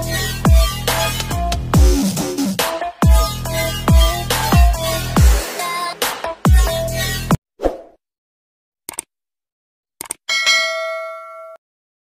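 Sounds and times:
bright bell ding: 10.3s - 11.6s.

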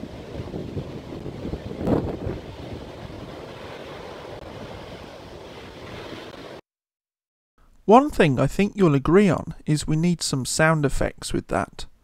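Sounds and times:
surf breaking on rocks: 0.0s - 6.6s
wind buffeting microphone: 0.0s - 6.6s.

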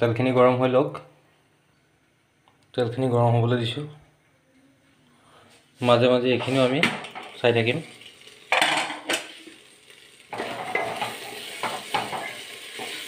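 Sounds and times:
vegetables sizzling in oil: 6.4s - 13.0s.

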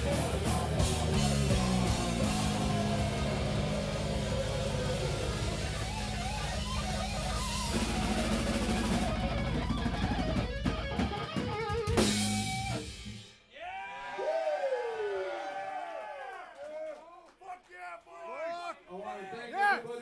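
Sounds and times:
electric guitar riffing: 0.0s - 13.0s
drum kit with heavy bass drum: 0.0s - 13.3s.

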